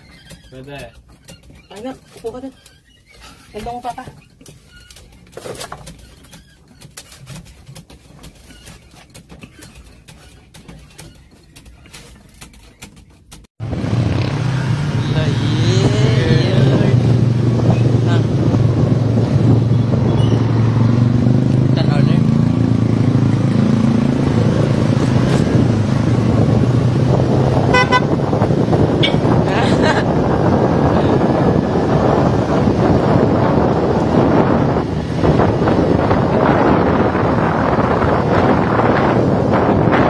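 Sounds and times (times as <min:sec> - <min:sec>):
vehicle engine drone: 0:13.6 - 0:40.0
wind over microphone: 0:13.6 - 0:40.0
short horn toot: 0:27.7 - 0:28.2.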